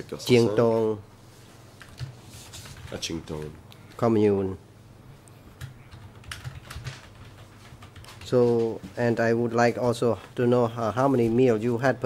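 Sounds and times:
computer keyboard keystrokes: 0:01.8 - 0:03.5, 0:05.6 - 0:08.4.

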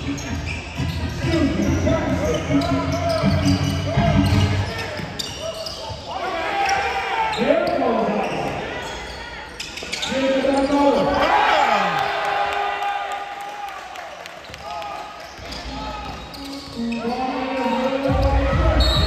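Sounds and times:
sneakers squeaking: 0:00.0 - 0:11.3, 0:14.4 - 0:19.0.

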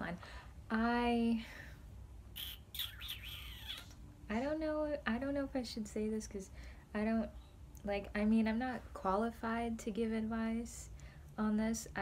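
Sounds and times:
faint low hum: 0:00.0 - 0:12.0
high-pitched chirps and squeaks: 0:02.4 - 0:04.0.

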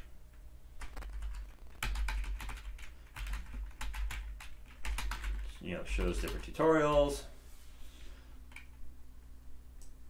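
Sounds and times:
computer keyboard typing: 0:00.0 - 0:07.1.

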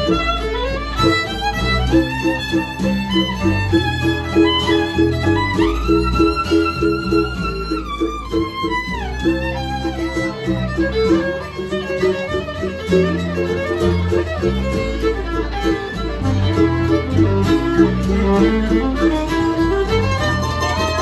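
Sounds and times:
fiddle playing: 0:00.0 - 0:21.0
low bass line: 0:00.0 - 0:21.0
plucked string accompaniment: 0:00.0 - 0:21.0.

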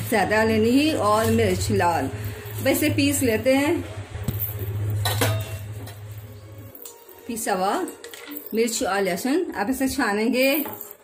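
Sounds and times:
steel utensils clinking: 0:00.8 - 0:03.6, 0:04.2 - 0:09.2, 0:10.4 - 0:11.0.

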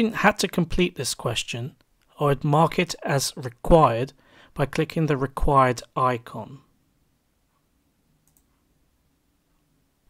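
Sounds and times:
computer mouse click: 0:08.2 - 0:08.6.

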